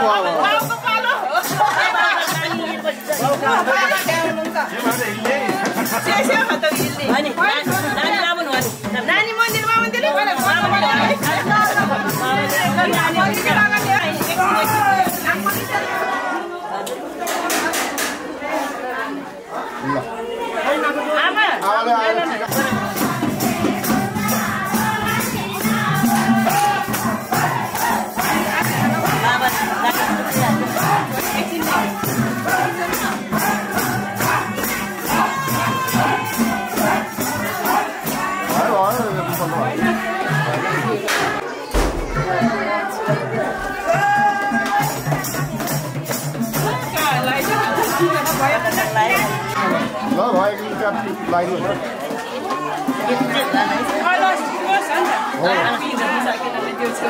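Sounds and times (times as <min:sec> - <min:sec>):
overlapping chatter: 0:00.0 - 0:57.0
people talking at once: 0:00.0 - 0:57.0
low music beat: 0:41.8 - 0:44.0.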